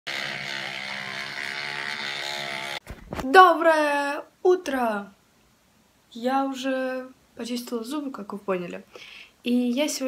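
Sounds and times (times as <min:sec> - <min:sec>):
electric toothbrush running: 0:00.0 - 0:02.8.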